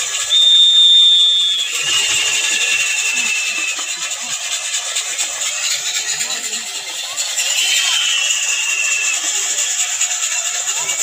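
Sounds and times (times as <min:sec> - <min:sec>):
shrill whistle: 0:00.0 - 0:04.2, 0:07.4 - 0:09.8
crowd noise hiss: 0:00.0 - 0:11.0.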